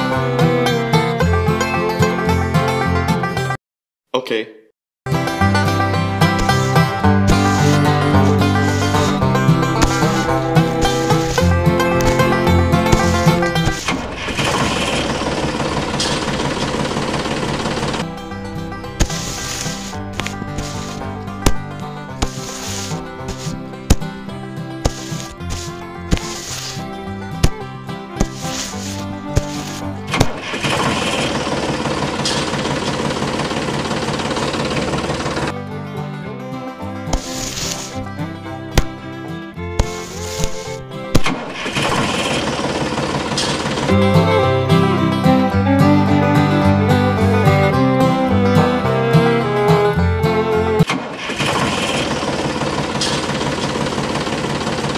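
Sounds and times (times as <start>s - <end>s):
plucked-string background music: 0.0s - 3.6s, 5.1s - 54.9s
toy tractor engine running: 6.2s - 35.6s, 37.2s - 39.0s, 39.6s - 44.9s, 50.8s - 54.9s
sharp click: 39.8s - 42.5s.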